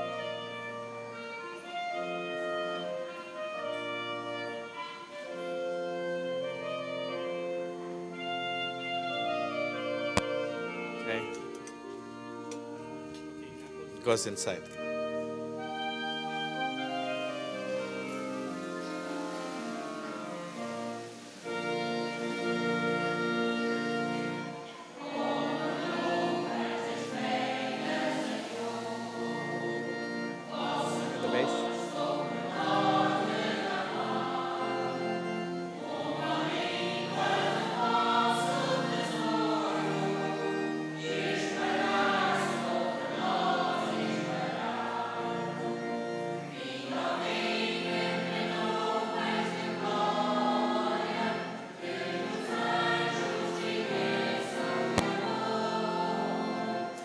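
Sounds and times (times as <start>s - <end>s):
choir singing a hymn: 0.0s - 57.0s
brief click: 10.1s - 10.4s.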